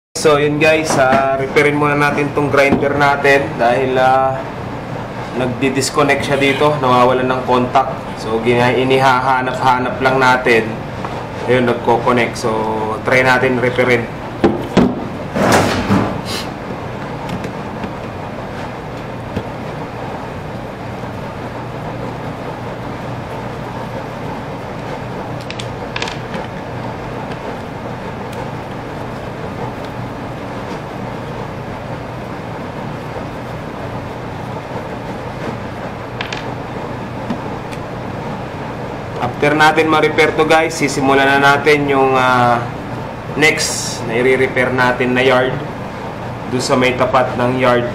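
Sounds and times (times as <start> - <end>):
steady background hum: 0.2 - 47.9.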